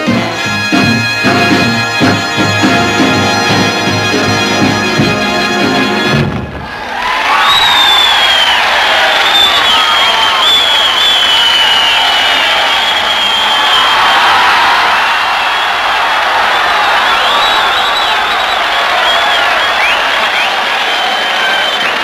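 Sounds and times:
big band music: 0.0 - 6.9
crowd cheering and shouting: 0.0 - 22.0
gliding whistles: 7.4 - 14.4, 16.5 - 22.0.

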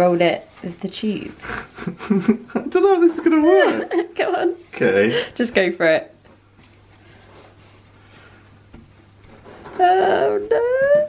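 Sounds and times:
felt mat rustling: 0.0 - 1.9, 3.4 - 10.4.

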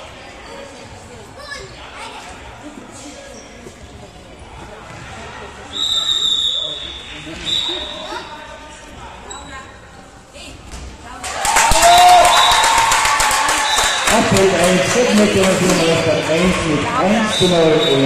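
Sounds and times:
referee's whistle blasts: 5.7 - 8.1, 17.1 - 18.0
spectators clapping and cheering: 11.2 - 17.6.

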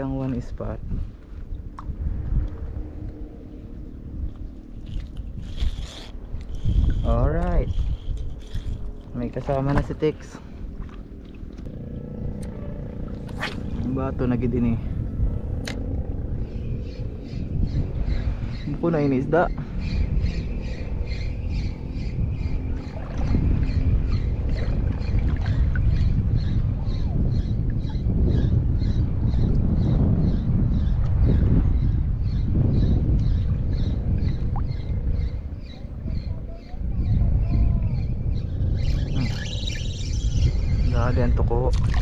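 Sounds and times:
wind noise on microphone: 0.0 - 42.0
water sloshing: 8.2 - 11.7, 41.7 - 42.0.

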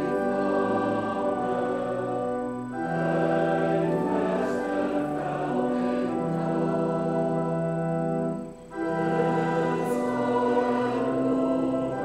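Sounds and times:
congregation singing a psalm: 0.0 - 12.0
organ accompaniment: 0.0 - 12.0.

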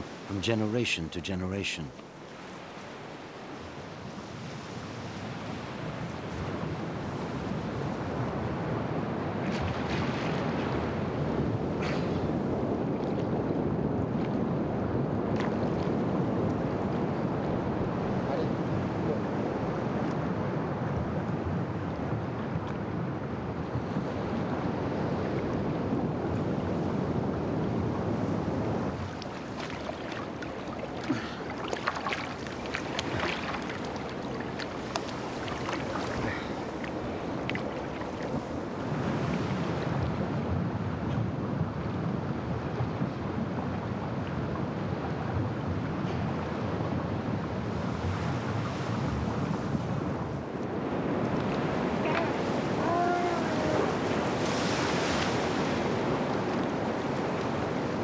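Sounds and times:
wind on microphone: 2.4 - 58.0
water sloshing and splashing: 28.9 - 38.8.

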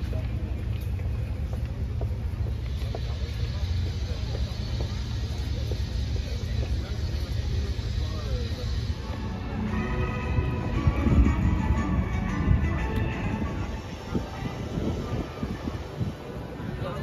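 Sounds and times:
faint scattered voices: 0.0 - 17.0.

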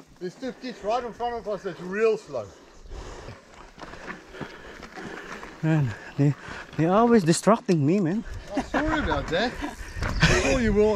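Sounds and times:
bike tyres crunching on gravel: 3.5 - 7.4.

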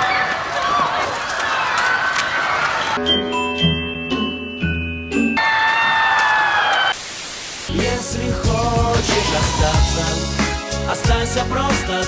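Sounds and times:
static hiss: 7.0 - 8.0.

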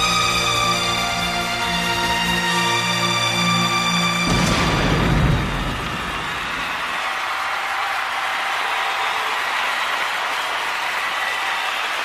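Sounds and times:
song music: 0.0 - 6.8
large audience applauding: 4.6 - 12.0.

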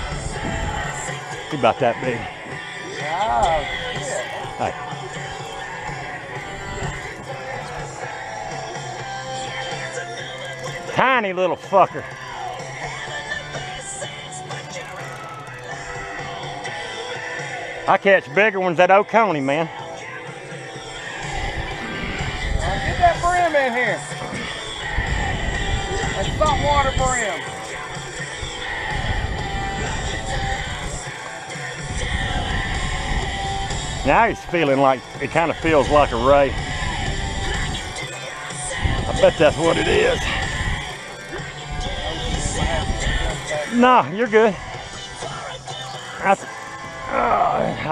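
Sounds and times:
rock music from radio: 0.0 - 47.9.

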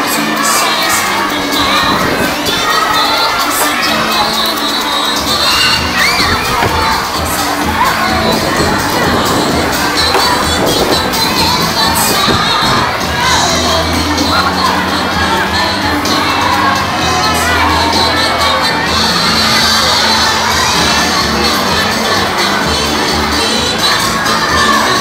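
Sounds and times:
children shouting and cheering: 0.0 - 25.0.

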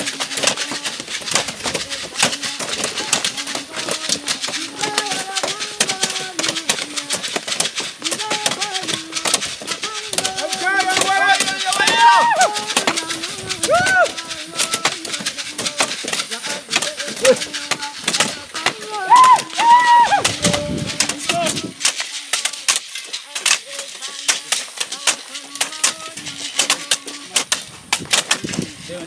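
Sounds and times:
hand hoes chopping dry earth: 0.0 - 29.0
voices calling: 0.0 - 29.0.

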